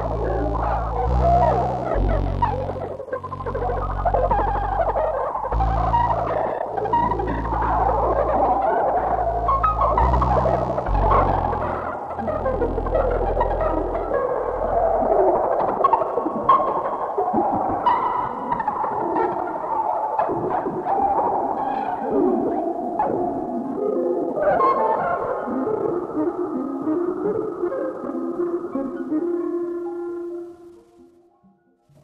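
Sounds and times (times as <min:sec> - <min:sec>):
low bass tones: 0:00.0 - 0:15.2.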